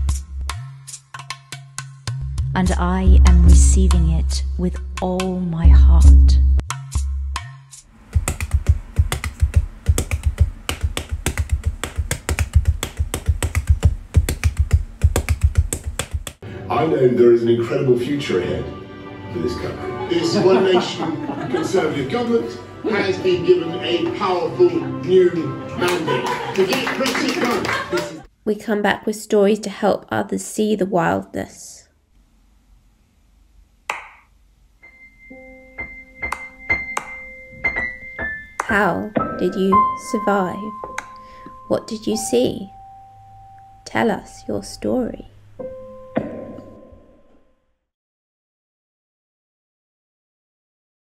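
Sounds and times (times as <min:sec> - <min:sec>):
bare feet slapping on wooden floor: 0:08.2 - 0:16.4, 0:36.2 - 0:38.8
high held note: 0:39.7 - 0:44.7.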